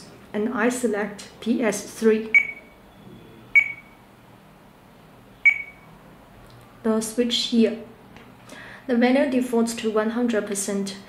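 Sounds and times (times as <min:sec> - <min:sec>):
short high touchscreen beep: 0:03.6 - 0:04.0, 0:05.4 - 0:05.9.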